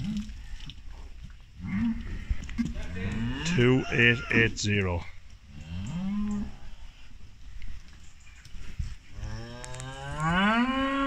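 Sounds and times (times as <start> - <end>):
cow mooing: 2.8 - 4.6, 9.2 - 11.0.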